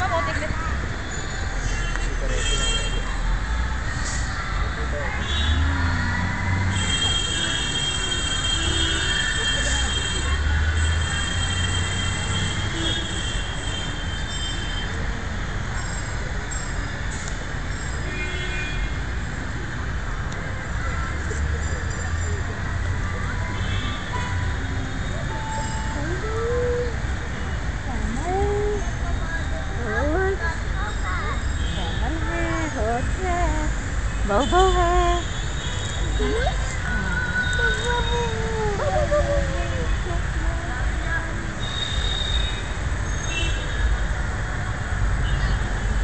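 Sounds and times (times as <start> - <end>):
indistinct voices: 24.1 - 41.7.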